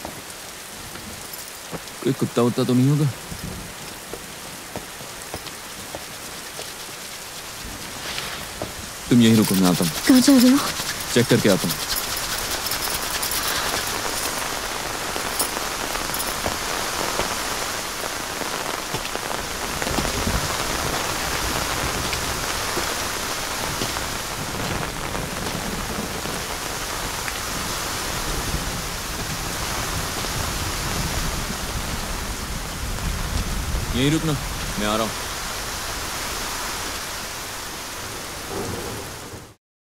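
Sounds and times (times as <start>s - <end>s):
heavy rain pouring: 0.0s - 39.6s.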